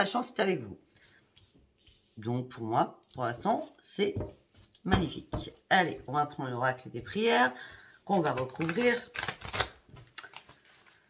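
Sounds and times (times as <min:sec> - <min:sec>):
cards clicking and snapping: 0:08.3 - 0:10.6.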